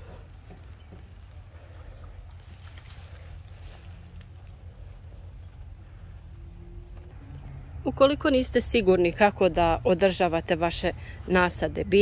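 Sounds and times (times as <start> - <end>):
faint rustles: 0.0 - 7.7.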